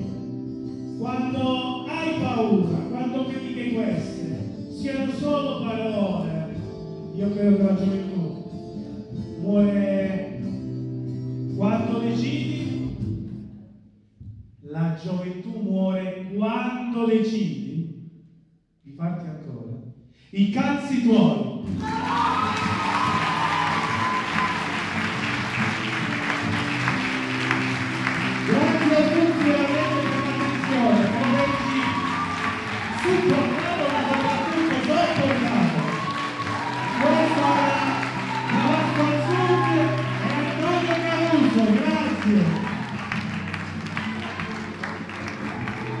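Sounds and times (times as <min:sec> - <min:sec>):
music playing: 0:00.0 - 0:13.7, 0:21.6 - 0:46.0
high call from crowd: 0:21.8 - 0:43.2
audience applauding: 0:21.8 - 0:46.0
acoustic guitar strumming: 0:21.9 - 0:42.2.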